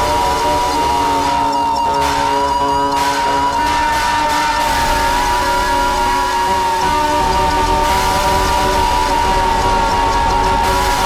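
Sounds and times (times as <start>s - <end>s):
harsh guitar feedback noise: 0.0s - 11.0s.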